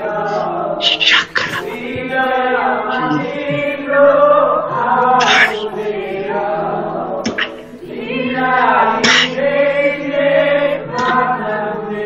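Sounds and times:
men singing worship song: 0.0 - 12.0.

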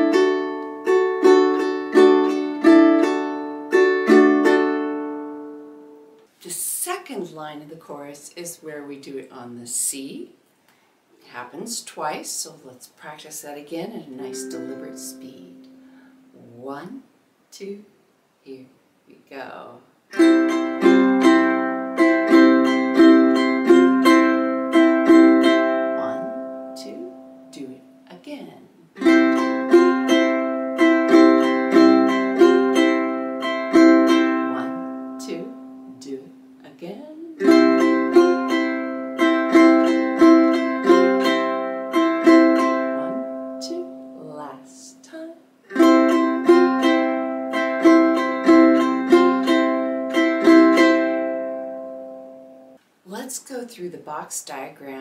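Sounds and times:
ukulele strummed slowly: 0.0 - 6.2, 14.3 - 16.0, 20.1 - 27.5, 29.0 - 36.6, 37.4 - 44.2, 45.7 - 52.8.

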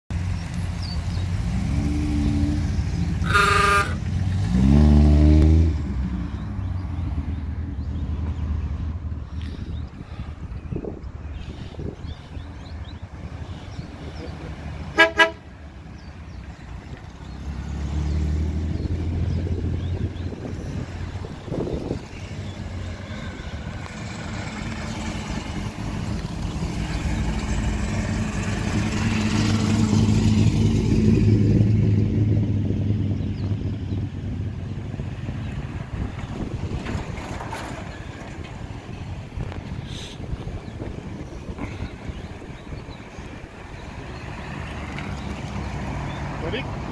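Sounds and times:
cars driving past: 0.1 - 46.9
car horn toot: 3.2 - 4.0, 14.9 - 15.4.

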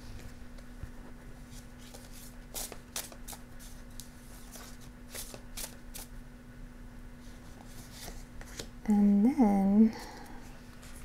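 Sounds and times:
cards being shuffled: 1.5 - 6.1.

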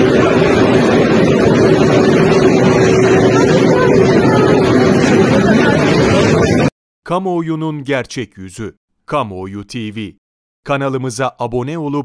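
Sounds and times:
dense crowd din: 0.0 - 6.7.

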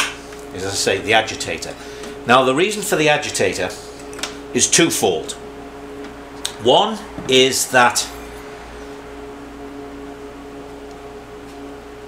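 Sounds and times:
hum of two held tones: 0.0 - 12.0.

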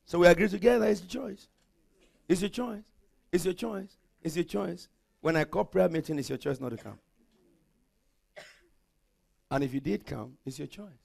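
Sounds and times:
short cough: 6.7 - 7.1, 8.3 - 8.8.

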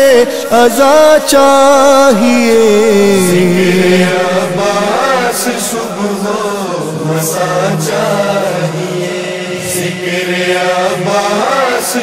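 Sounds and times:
male chorus chanting a drone: 0.0 - 12.0.

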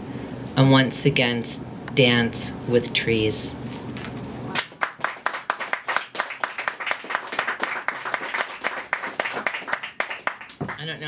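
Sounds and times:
audience clapping: 4.6 - 11.0.

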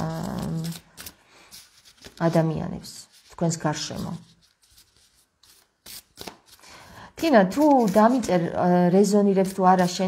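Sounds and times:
cards being shuffled: 4.3 - 6.6.

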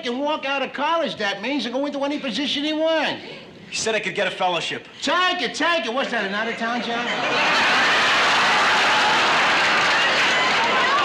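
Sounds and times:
audience laughing and applauding: 6.5 - 11.0.

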